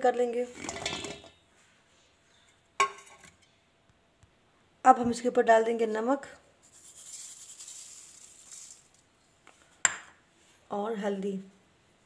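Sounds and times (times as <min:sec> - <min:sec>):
clink on steel mixing bowl: 0:00.6 - 0:01.4.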